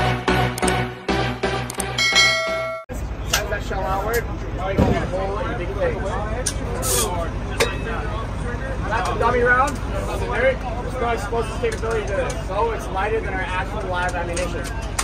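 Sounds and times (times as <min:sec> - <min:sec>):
electronic music with pulsing beat: 0:00.0 - 0:02.9
ringing chime: 0:02.0 - 0:02.9
crowd chatter: 0:02.9 - 0:15.0.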